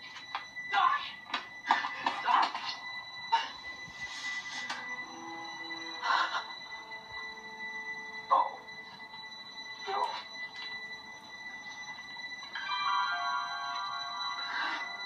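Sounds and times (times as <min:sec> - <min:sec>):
soft held score notes: 0:00.0 - 0:15.0.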